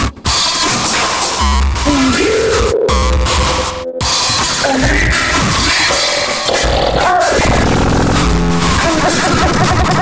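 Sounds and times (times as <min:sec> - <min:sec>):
harsh electronic noise music: 0:00.0 - 0:10.0.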